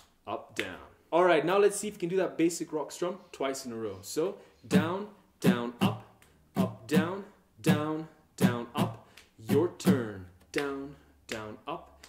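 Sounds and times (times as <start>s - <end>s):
muted acoustic guitar strumming: 4.7s - 10.2s.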